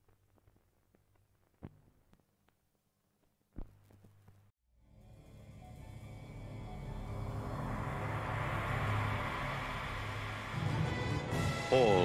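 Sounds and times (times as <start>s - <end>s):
low rumble: 4.9s - 11.4s
rushing jet-like noise: 7.0s - 11.9s.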